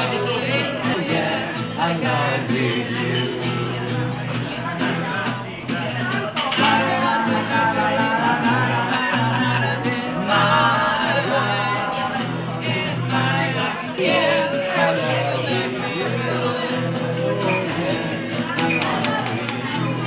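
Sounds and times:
person singing: 0.0 - 5.2, 6.5 - 20.0
strummed guitar chords: 0.0 - 20.0.

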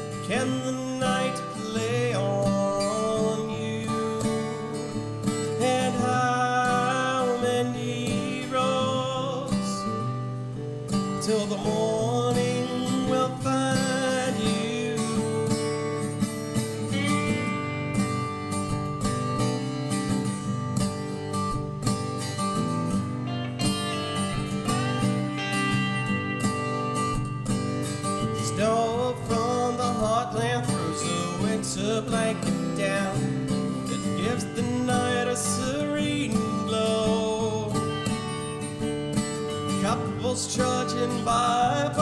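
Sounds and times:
resonator guitar picked and strummed: 0.0 - 42.0.

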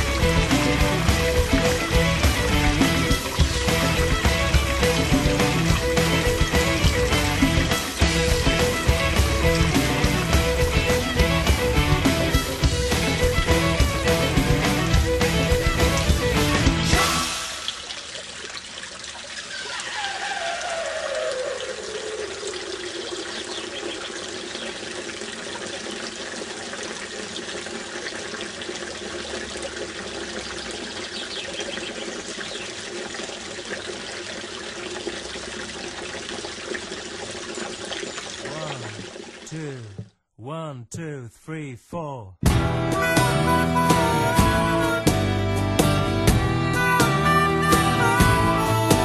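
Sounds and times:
guitar music: 0.0 - 17.2, 42.4 - 49.0
running water: 0.0 - 40.1.

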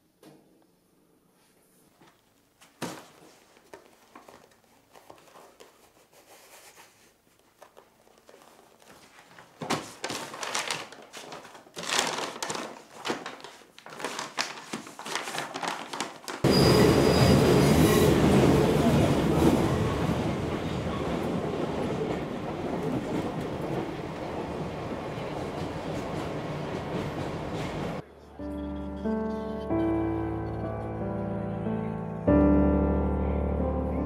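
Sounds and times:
high wheel squeal: 16.4 - 18.2
metro train rumble and rattle: 16.5 - 28.0.

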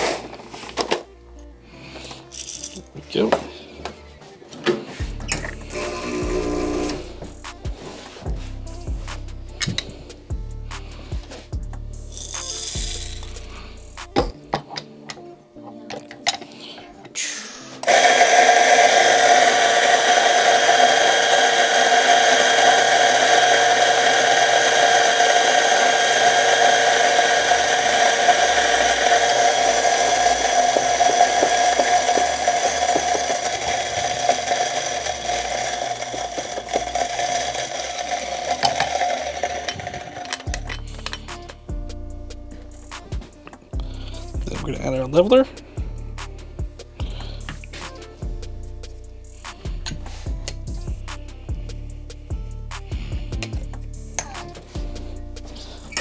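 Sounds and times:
coffee grinder motor whining: 5.3 - 7.3, 17.8 - 41.2.

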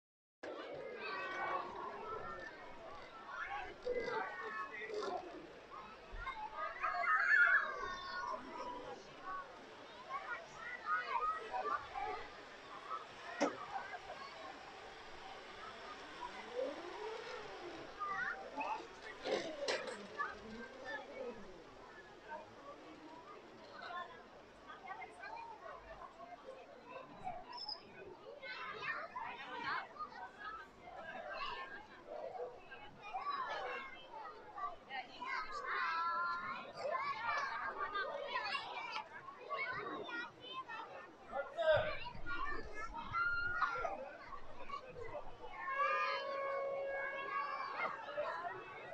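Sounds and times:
children's voices: 0.4 - 48.9
crowd chatting: 0.4 - 48.9.

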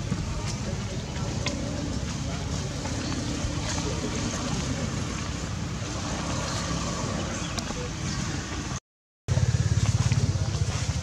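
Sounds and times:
vehicle engine throbbing: 0.0 - 11.0.

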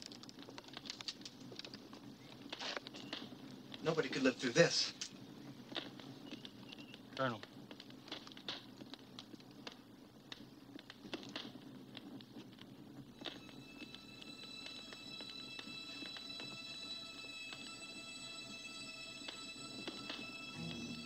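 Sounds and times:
small clicks and crackles: 0.0 - 16.6
music with high held tones: 13.2 - 21.0.

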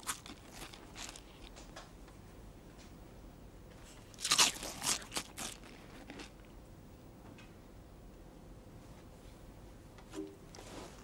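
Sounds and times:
child crunching crisps: 0.0 - 1.5, 4.1 - 6.5.

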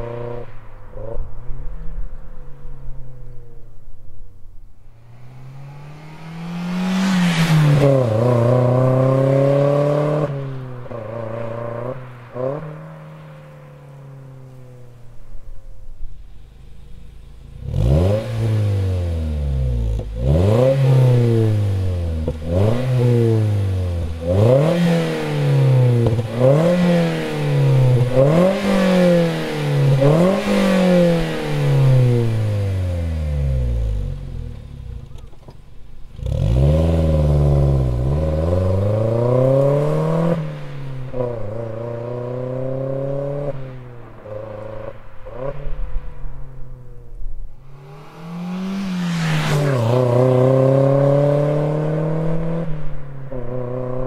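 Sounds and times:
car engine revving: 4.9 - 54.0.

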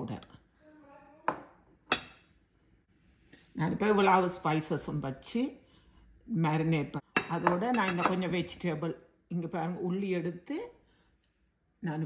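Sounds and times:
dishes clinking on counter: 1.3 - 2.3, 7.2 - 8.2.

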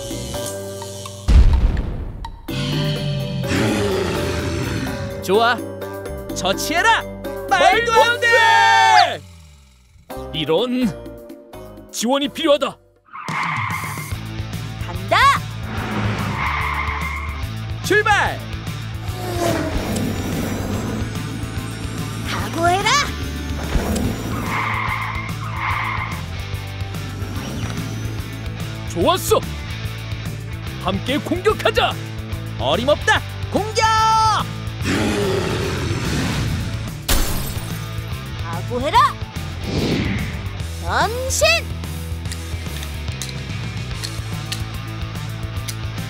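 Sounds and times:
background music: 0.0 - 46.0
race car tyres screeching: 13.1 - 14.2, 15.6 - 17.6, 18.9 - 28.5
falling low growl: 19.0 - 22.4, 34.8 - 36.9.

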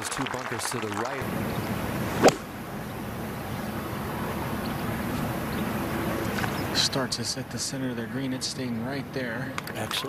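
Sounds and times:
outdoor background murmur: 0.0 - 10.0
golf club striking ball: 2.2 - 2.5.

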